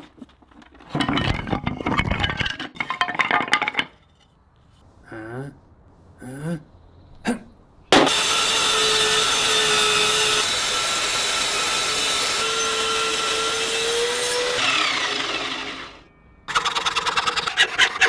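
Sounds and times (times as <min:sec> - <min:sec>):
table saw cutting wood: 0:07.9 - 0:16.7
hacksaw cutting wood: 0:07.9 - 0:18.0.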